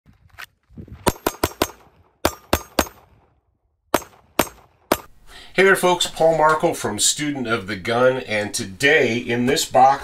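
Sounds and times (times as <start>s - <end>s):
pistol shots: 1.0s - 5.1s.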